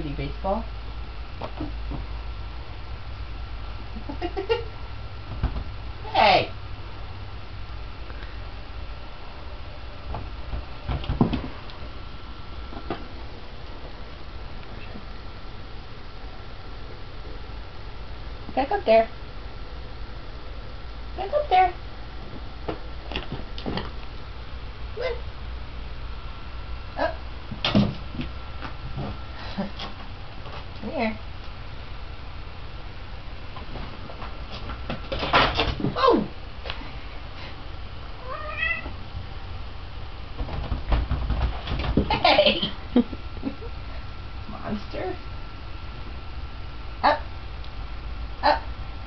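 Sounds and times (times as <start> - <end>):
low steady rumble: 0.0 - 49.0
soft knocks and thumps: 5.3 - 5.7, 10.1 - 11.6, 40.4 - 42.2
cat scrabbling on punching bag: 40.4 - 42.1.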